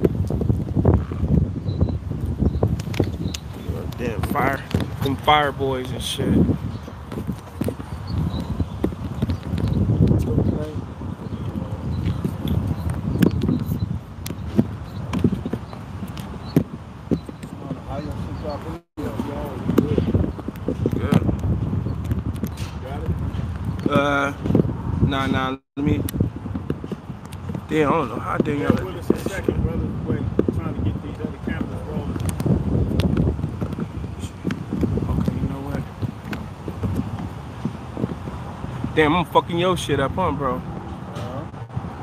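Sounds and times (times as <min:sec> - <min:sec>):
wind buffeting microphone: 0:00.0 - 0:42.0
sharp clicks: 0:02.7 - 0:05.0.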